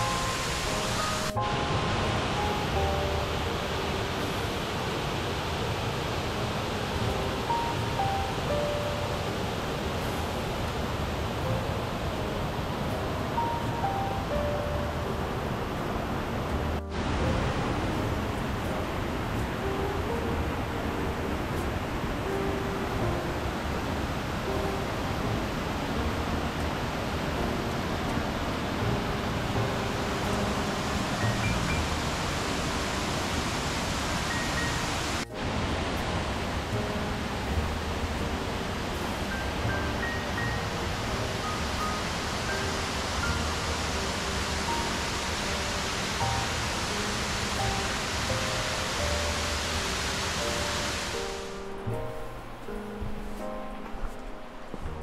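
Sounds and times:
waterfall rushing over rock ledge: 0.0s - 51.8s
melodic background music: 0.0s - 55.0s.

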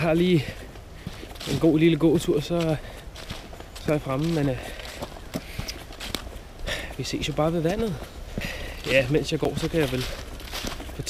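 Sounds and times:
footsteps crunching in woodland: 0.0s - 11.0s.

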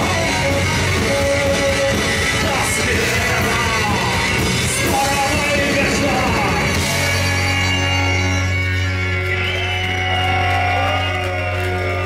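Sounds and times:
rock band with saxophone: 0.0s - 12.0s
crowd shouting and whooping: 7.0s - 12.0s.

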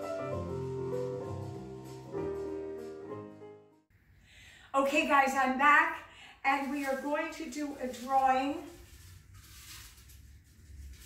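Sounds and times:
paper tickets rustling in glass jar: 6.5s - 11.0s.

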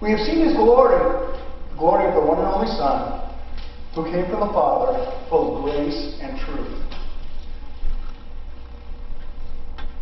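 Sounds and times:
steady low hum: 0.0s - 10.0s
footsteps on stage: 3.3s - 8.3s.

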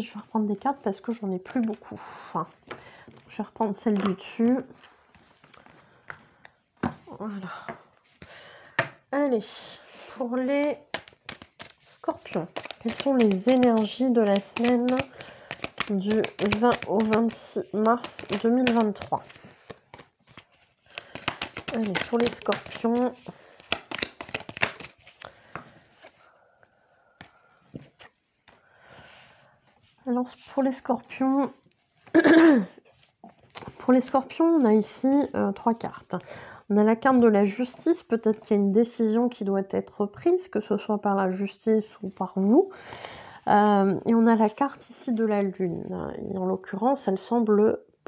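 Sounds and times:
cards rustling: 10.8s - 26.2s.

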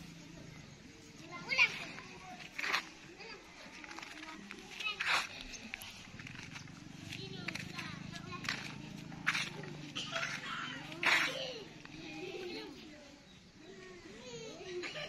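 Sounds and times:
distant people talking and calling: 0.0s - 15.0s.

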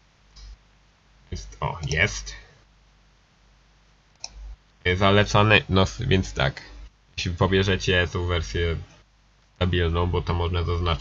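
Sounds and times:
man speaking: 1.3s - 2.5s, 4.9s - 8.9s, 9.6s - 11.0s.

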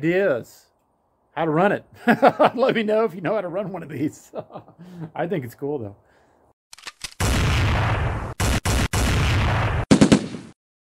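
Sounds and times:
automatic gunfire: 7.2s - 10.5s
loud single gunshots: 7.2s - 10.6s.

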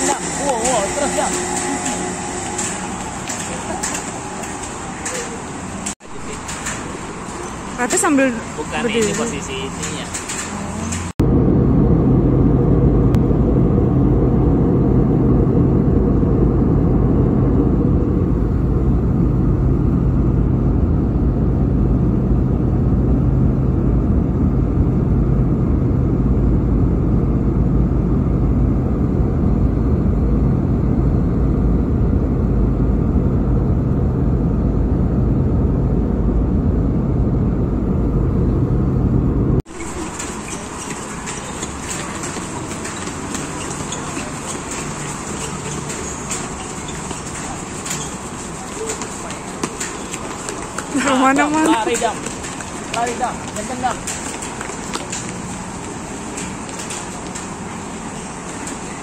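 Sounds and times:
airliner cabin drone: 0.0s - 59.0s.

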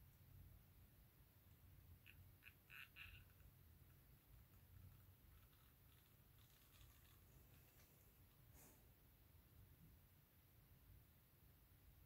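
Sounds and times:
faint short squeaks: 2.0s - 3.6s.

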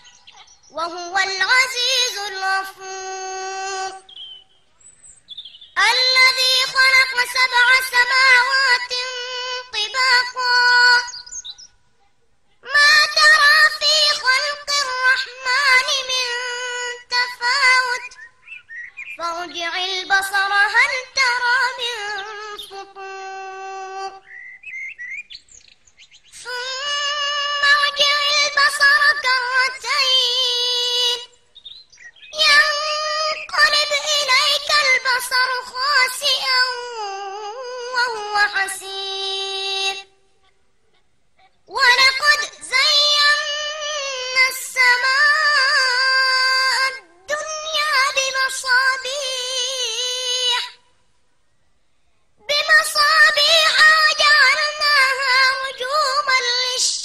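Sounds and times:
child reciting: 0.0s - 4.2s, 5.8s - 24.4s, 26.3s - 51.0s, 52.4s - 57.0s
faint high bird chirps: 0.0s - 35.6s.

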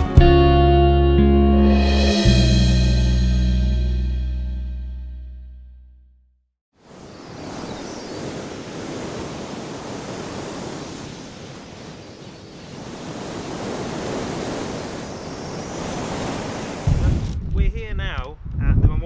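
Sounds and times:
sea water at shore: 6.7s - 17.4s
wind: 6.7s - 19.0s.

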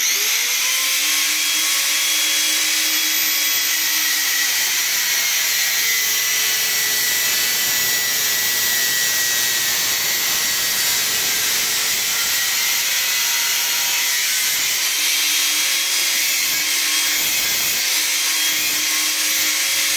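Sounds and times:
angle grinder cutting metal: 0.0s - 19.9s.

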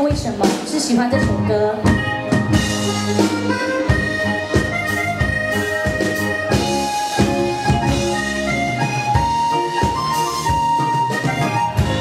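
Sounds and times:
steady drum beat: 0.0s - 12.0s
reedy lead melody: 0.1s - 12.0s.

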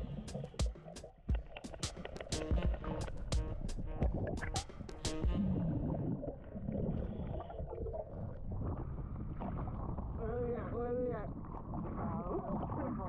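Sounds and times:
water sloshing against camera housing: 0.3s - 5.4s.

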